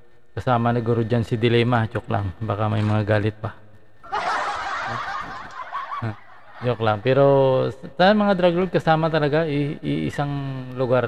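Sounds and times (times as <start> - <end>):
person snickering: 4.1 - 6.8.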